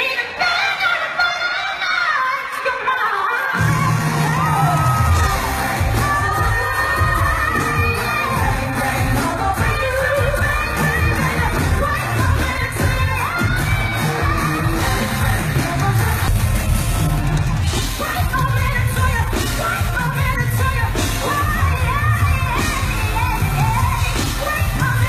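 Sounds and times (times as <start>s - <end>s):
woman singing: 0.0s - 16.4s, 17.7s - 25.0s
band with heavy bass and drums: 3.5s - 25.0s.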